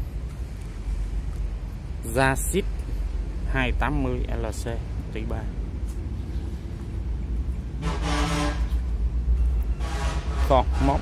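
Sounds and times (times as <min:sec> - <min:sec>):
road traffic rumble: 0:00.0 - 0:11.0
vehicle horn blare: 0:07.8 - 0:08.8, 0:09.7 - 0:11.0.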